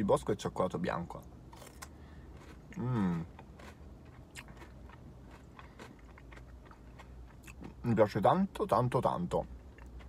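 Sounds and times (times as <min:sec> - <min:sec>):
low steady hum: 0:00.0 - 0:10.0
chewing wafer bar: 0:01.5 - 0:07.8.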